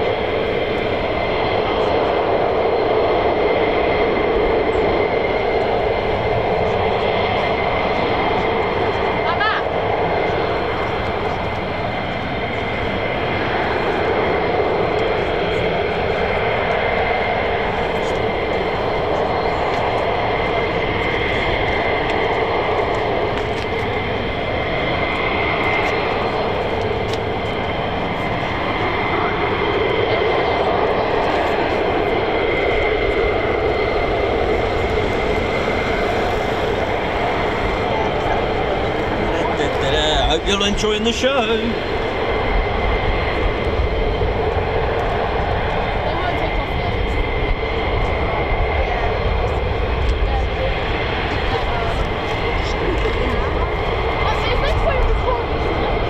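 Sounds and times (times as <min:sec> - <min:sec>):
jet engines idling: 0:00.0 - 0:56.0.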